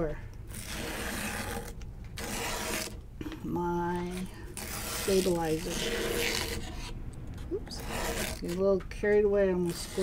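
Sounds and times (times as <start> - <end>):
wand point scratching paper: 0.5 - 3.0, 3.8 - 7.0, 7.6 - 8.8, 9.5 - 10.0.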